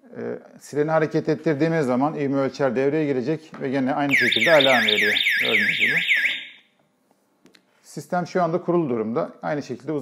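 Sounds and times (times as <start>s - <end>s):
alarm siren wailing: 4.1s - 6.6s.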